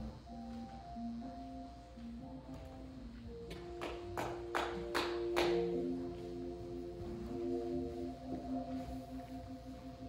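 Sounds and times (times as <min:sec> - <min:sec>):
sustained keyboard chords: 0:00.0 - 0:10.0.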